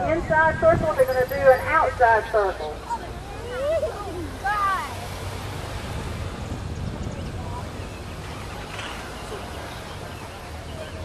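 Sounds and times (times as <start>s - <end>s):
wind noise on microphone: 0.0s - 2.5s, 5.1s - 11.0s
motorcycle engines humming: 0.0s - 11.0s.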